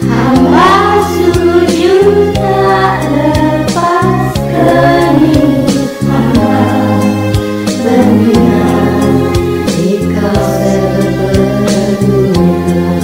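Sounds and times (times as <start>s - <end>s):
group of voices singing: 0.0s - 13.0s
instrumental backing with beat: 0.0s - 13.0s.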